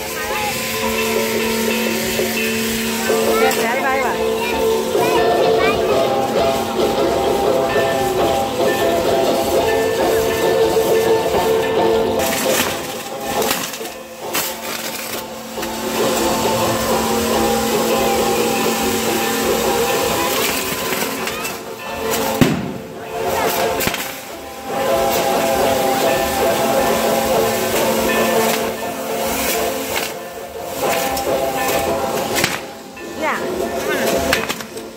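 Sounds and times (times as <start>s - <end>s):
fireworks hissing and crackling: 0.0s - 34.9s
music with sustained tones: 0.0s - 34.9s
firework bangs: 20.8s - 24.3s.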